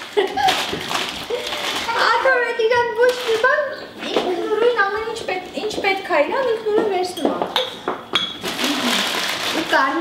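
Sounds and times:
small pieces rattling into a bowl: 8.4 - 10.0.

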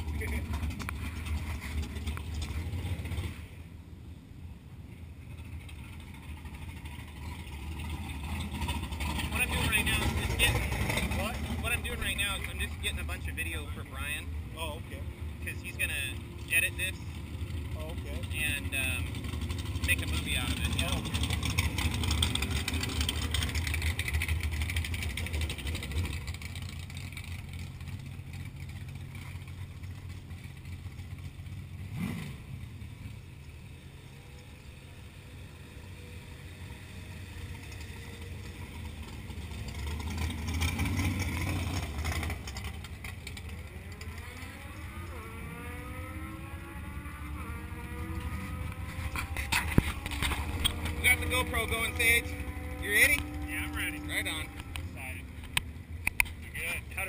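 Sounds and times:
golf cart motor hum: 4.9 - 57.0
rising whines: 32.0 - 57.0.

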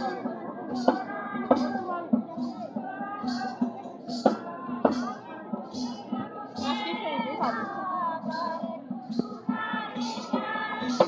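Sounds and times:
drums keeping a steady beat: 0.0 - 11.0.

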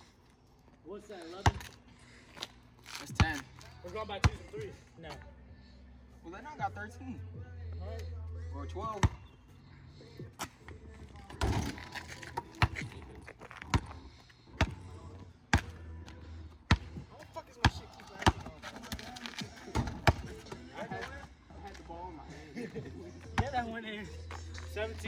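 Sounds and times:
basketball bouncing on asphalt: 1.3 - 1.8, 3.0 - 4.8, 8.9 - 9.4, 10.4 - 21.1, 23.2 - 23.7.

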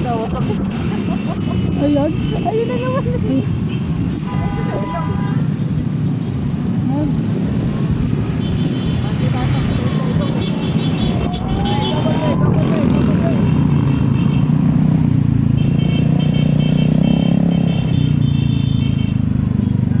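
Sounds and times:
motorcycle engines running: 0.0 - 20.0.

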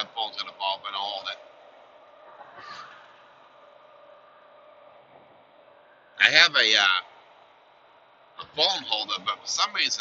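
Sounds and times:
low steady hum: 0.0 - 10.0
road and engine noise in cab: 0.0 - 10.0.

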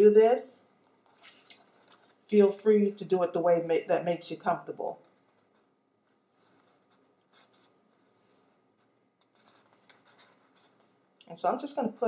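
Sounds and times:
ribbon and card rustling: 0.9 - 2.8.

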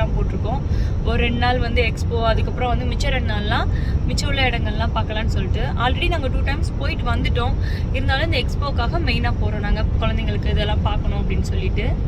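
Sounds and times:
car cabin road and engine rumble: 0.0 - 12.0
woman talking: 0.0 - 12.0.

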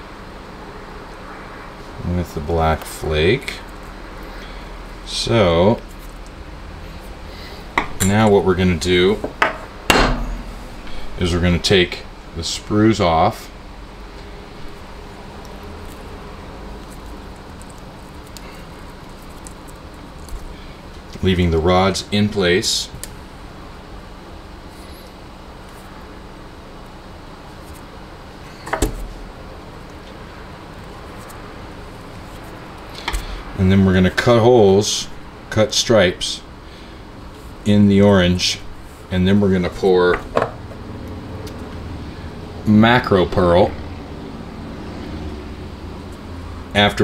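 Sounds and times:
steady low hum: 0.0 - 47.0
sharp knock on work surface: 9.3 - 10.4.

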